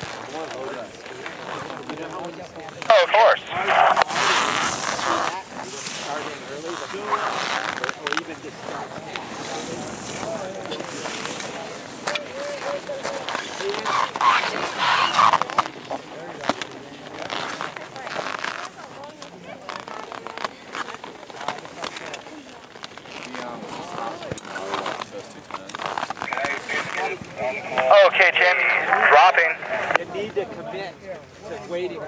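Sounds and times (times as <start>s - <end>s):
people talking indistinctly: 0.0s - 32.0s
skis scraping through snow: 3.6s - 12.0s.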